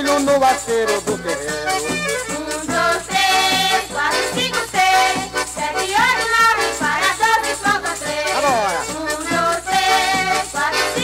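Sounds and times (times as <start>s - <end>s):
band music: 0.0s - 11.0s
shaker keeping quick beat: 0.0s - 11.0s.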